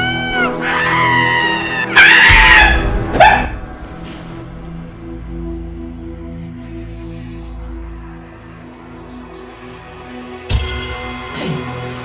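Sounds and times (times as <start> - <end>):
woman screaming: 0.0 - 3.5
background music: 0.0 - 12.0.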